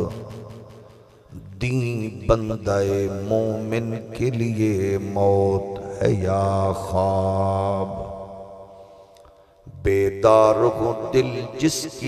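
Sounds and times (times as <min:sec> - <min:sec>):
man chanting verse: 0:00.0 - 0:00.4, 0:01.3 - 0:08.3, 0:09.7 - 0:12.0.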